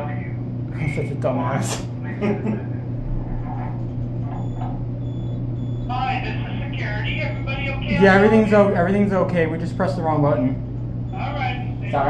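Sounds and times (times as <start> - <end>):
elevator car humming: 2.1 - 12.0
high electronic intercom tones: 4.3 - 8.6
person speaking: 6.1 - 10.6.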